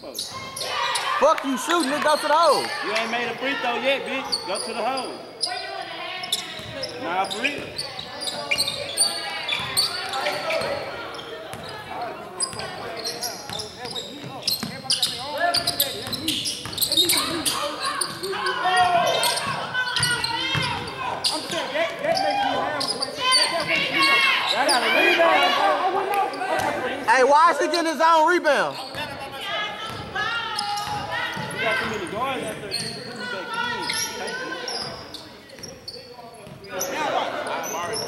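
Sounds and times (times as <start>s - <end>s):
players shouting: 17.0s - 32.5s.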